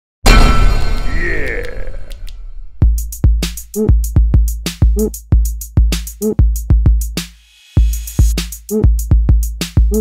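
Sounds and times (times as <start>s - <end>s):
loud cinematic boom: 0.3s - 1.6s.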